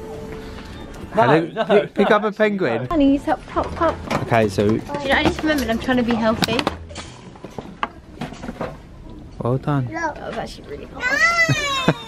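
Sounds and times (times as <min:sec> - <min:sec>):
knocks and rattles at shopping trolley: 0:03.6 - 0:06.8.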